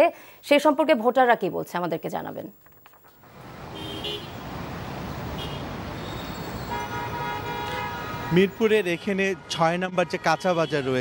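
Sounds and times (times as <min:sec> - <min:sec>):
street traffic noise: 0:03.1 - 0:11.0
vehicle horns: 0:03.6 - 0:09.2, 0:09.9 - 0:11.0.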